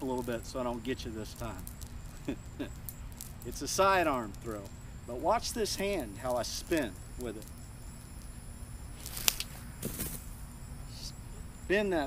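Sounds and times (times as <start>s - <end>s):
high insect drone: 0.0s - 12.0s
cast net swish: 9.0s - 10.3s.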